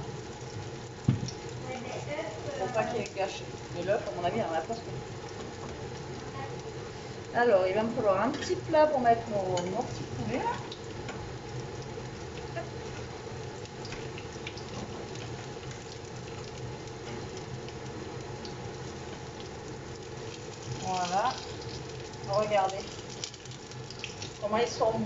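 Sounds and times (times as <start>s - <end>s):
food sizzling in oil: 0.0s - 25.0s
range hood fan humming: 0.0s - 25.0s.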